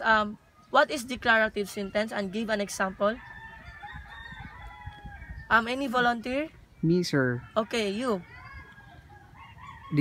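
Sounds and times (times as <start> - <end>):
rooster crowing: 1.8 - 5.8, 7.4 - 10.0.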